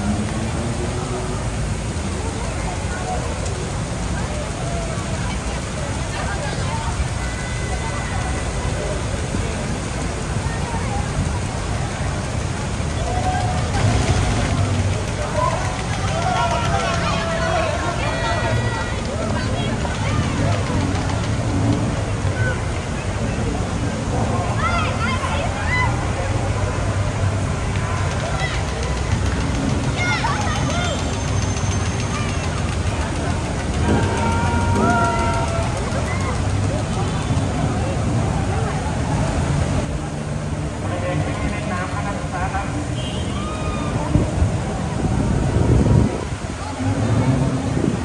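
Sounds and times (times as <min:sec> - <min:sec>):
faint voices and calls: 0:00.0 - 0:48.0.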